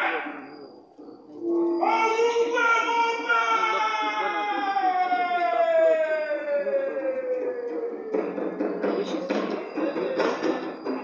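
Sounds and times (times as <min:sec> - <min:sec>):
loud drawn-out wailing voice: 0:00.0 - 0:11.0.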